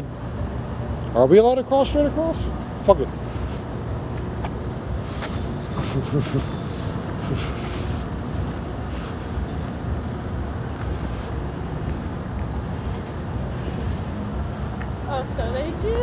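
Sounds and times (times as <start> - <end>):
traffic: 0.0 - 16.0.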